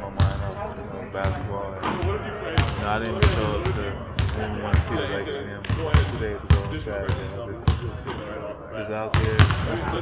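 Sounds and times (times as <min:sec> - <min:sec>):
basketball bouncing on wooden floor: 0:01.2 - 0:05.0, 0:05.6 - 0:08.3, 0:09.1 - 0:09.7.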